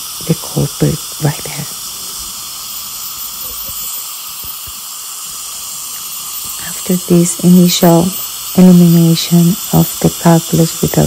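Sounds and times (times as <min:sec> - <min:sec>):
dental equipment hissing: 0:00.0 - 0:11.0.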